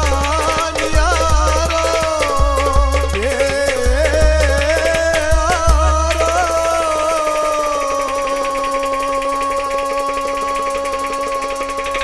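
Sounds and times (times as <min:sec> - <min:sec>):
fast hand drumming: 0:00.0 - 0:12.0.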